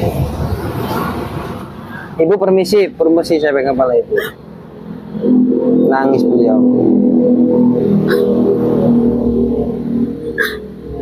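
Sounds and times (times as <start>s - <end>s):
sharp catching breaths: 1.8s - 2.2s.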